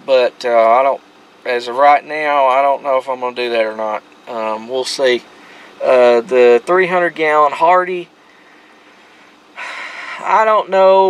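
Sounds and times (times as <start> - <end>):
man breathing in: 5.3 - 5.8, 8.2 - 10.2.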